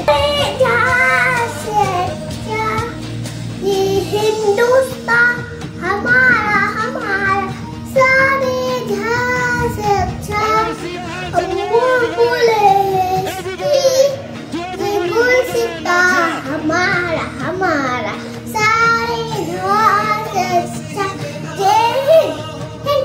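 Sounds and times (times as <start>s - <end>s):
boy singing: 0.0s - 23.0s.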